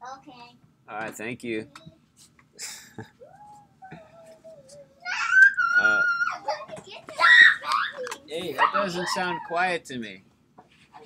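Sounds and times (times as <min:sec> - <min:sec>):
children shouting: 0:05.0 - 0:09.6
children squealing and shrieking: 0:05.0 - 0:09.7.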